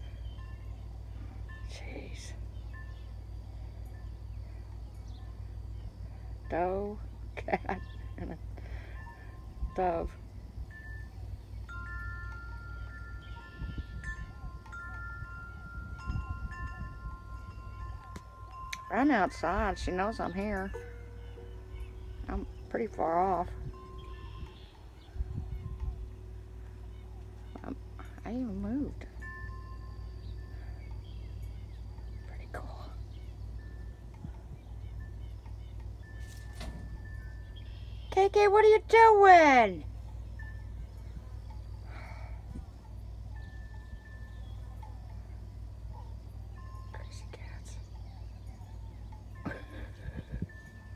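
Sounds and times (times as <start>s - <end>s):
faint bird chirps: 0.0s - 10.0s, 20.0s - 38.5s, 39.8s - 50.9s
wind chimes ringing: 0.0s - 50.9s.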